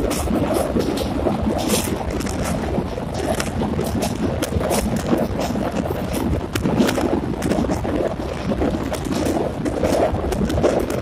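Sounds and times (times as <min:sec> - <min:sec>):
train rumbling over bridge: 0:00.0 - 0:11.0
wind on microphone: 0:00.0 - 0:11.0.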